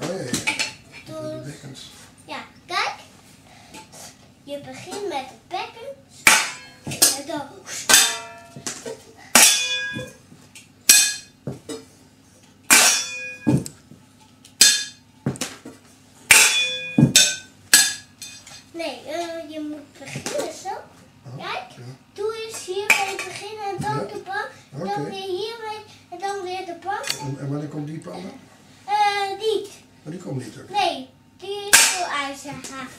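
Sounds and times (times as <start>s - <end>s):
child's voice: 1.0s - 1.7s, 2.3s - 3.1s, 4.4s - 6.0s, 7.0s - 7.7s, 18.7s - 27.4s, 28.9s - 29.8s, 30.7s - 32.9s
metal pots struck like drums: 6.2s - 6.8s, 7.9s - 8.6s, 9.3s - 10.2s, 10.9s - 11.4s, 12.7s - 13.7s, 14.6s - 15.0s, 16.3s - 18.5s.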